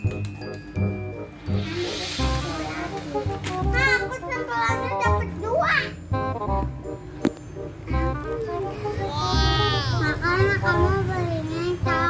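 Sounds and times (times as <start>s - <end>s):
background music with steady beat: 0.0s - 12.0s
child's high voice: 3.7s - 6.0s, 8.7s - 12.0s.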